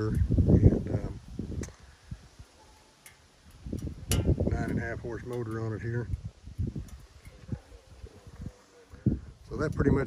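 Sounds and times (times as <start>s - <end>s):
wind buffeting microphone: 0.0s - 2.5s, 3.4s - 10.0s.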